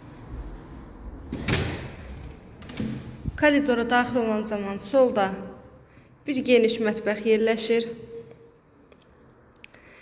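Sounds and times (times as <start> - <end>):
house door opening: 1.3 - 3.3.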